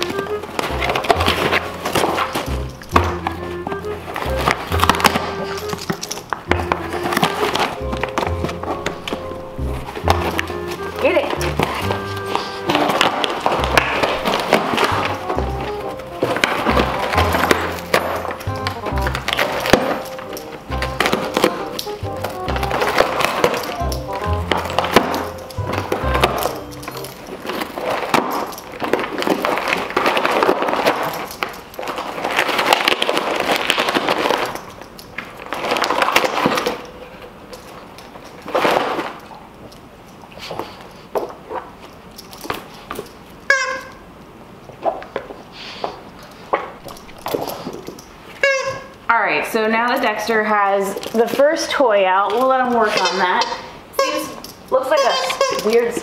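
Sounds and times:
dog tearing cardboard box: 9.9s - 20.0s, 20.8s - 23.8s, 27.2s - 34.6s.

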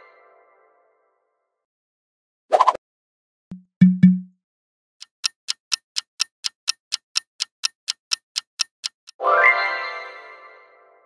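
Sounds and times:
clock ticking: 3.5s - 4.3s, 5.0s - 9.2s.

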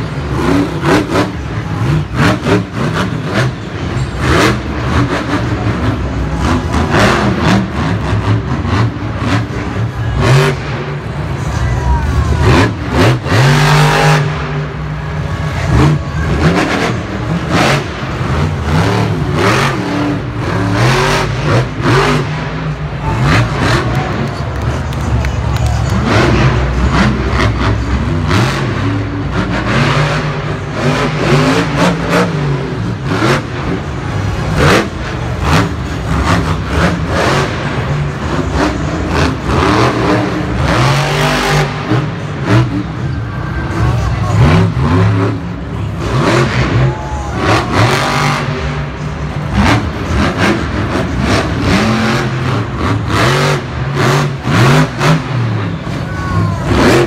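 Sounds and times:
monster truck engine revving: 0.0s - 57.0s.

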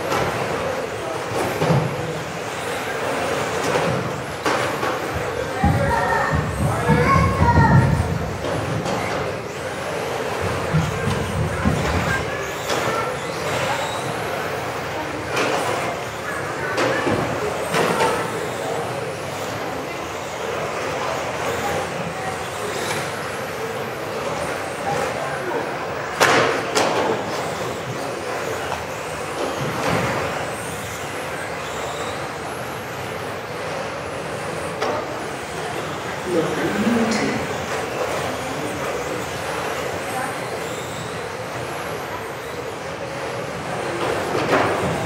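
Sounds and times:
model car motors whirring: 0.0s - 45.0s.

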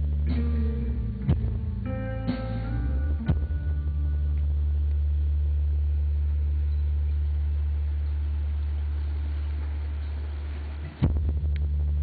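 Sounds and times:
low drone through speakers: 0.0s - 12.0s.

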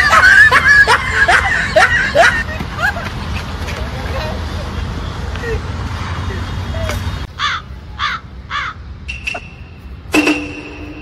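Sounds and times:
street noise: 0.0s - 11.0s
crow cawing: 7.4s - 8.8s.

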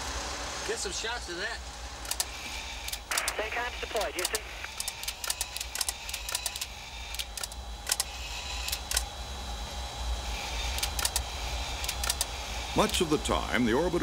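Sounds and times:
low hum and hiss: 0.0s - 14.0s
sharp clicks: 2.0s - 3.4s, 4.0s - 9.1s, 10.7s - 12.3s
crackling radio static: 2.4s - 6.5s.

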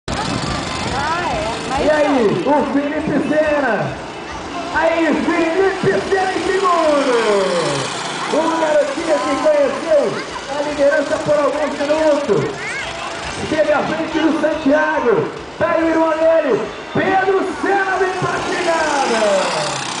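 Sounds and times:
go-kart engines racing: 0.1s - 20.0s
announcer speaking: 1.0s - 12.6s, 13.3s - 19.8s
man talking fast: 1.8s - 4.0s, 4.7s - 12.5s, 13.4s - 19.8s.

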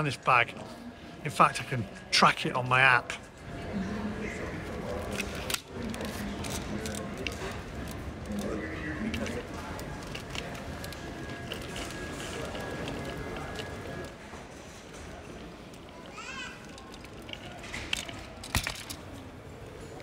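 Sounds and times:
suitcase wheels rumbling on tiles: 6.4s - 19.1s.

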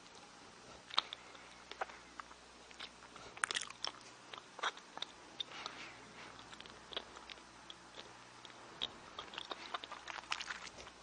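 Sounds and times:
wet mouth clicks and smacks: 6.4s - 11.0s.

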